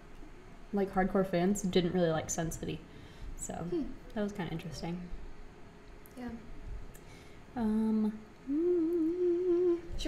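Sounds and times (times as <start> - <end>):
woman humming: 7.6 - 10.0.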